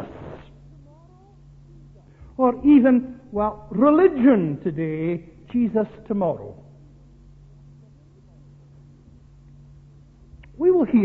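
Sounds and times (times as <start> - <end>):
cassette recording hum: 0.0 - 11.0.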